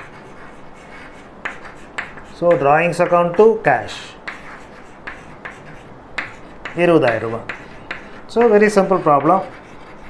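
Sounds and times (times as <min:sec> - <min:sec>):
chalk writing on blackboard: 0:00.0 - 0:10.0.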